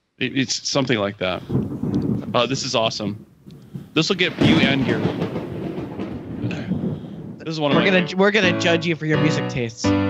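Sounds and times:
dense steady noise: 0.0 - 8.1.

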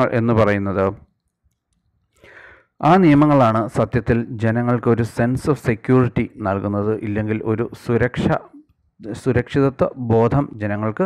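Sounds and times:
man speaking: 0.0 - 1.0, 2.8 - 11.0.

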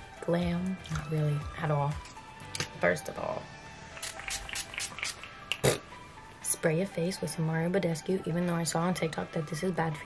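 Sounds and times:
soft background music: 0.0 - 10.0
spray bottle hissing: 4.0 - 5.3.

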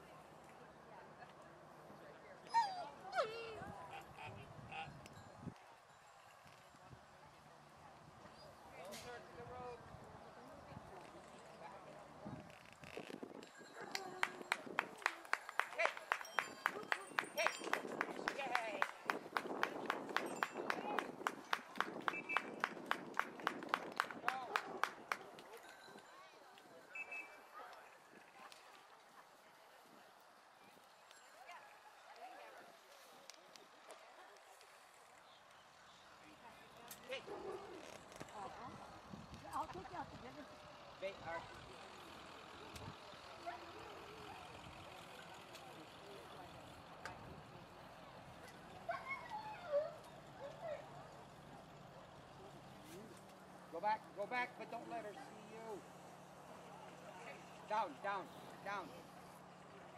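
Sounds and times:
dog whining: 2.5 - 3.6
murmur of spectators: 40.0 - 54.2.

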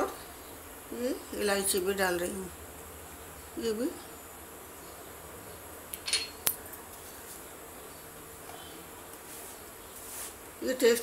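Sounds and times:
glass bowl clinking: 6.0 - 6.4.

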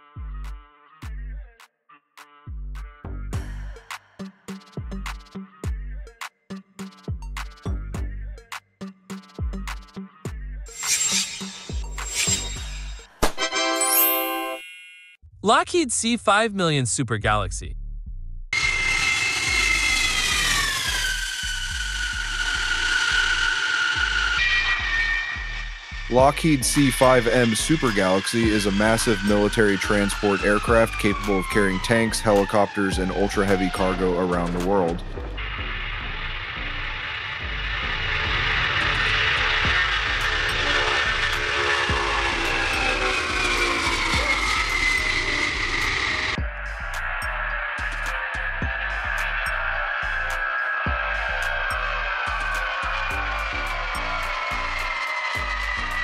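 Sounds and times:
background music with low beat: 0.0 - 1.6, 2.5 - 10.8, 26.1 - 35.7, 46.4 - 56.0
jet engine whine: 10.7 - 13.1, 18.6 - 56.0.

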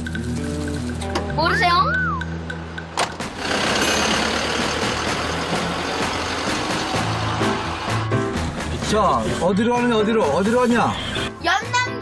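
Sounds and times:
background music: 0.0 - 12.0
van driving off: 2.6 - 9.4.

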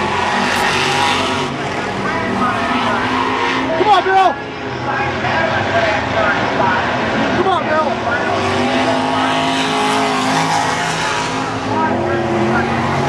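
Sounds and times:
race car engines running hard: 0.0 - 13.0.

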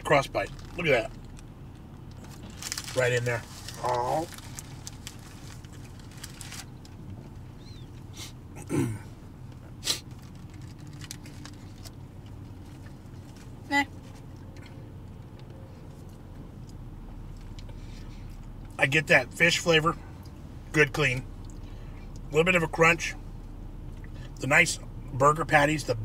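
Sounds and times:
low cabin hum: 0.0 - 26.0
short vocal noises: 8.2 - 9.2.

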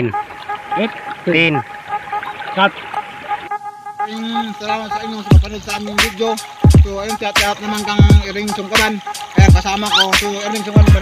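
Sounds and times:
background music: 0.0 - 11.0
man calling out: 4.0 - 8.8, 9.4 - 11.0.

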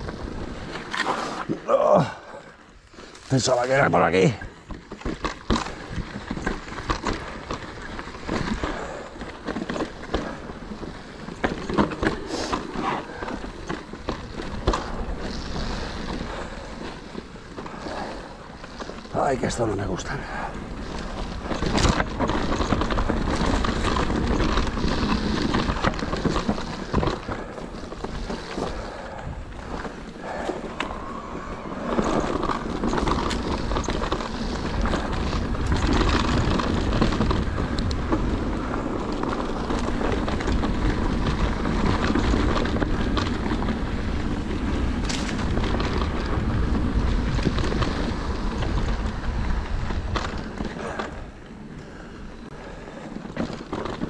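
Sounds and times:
bike knocks and rattles: 0.0 - 1.7, 3.4 - 19.1, 21.0 - 31.2, 31.9 - 54.0
tyre rumble on dirt: 3.3 - 19.6
wind buffeting microphone: 20.3 - 53.6.

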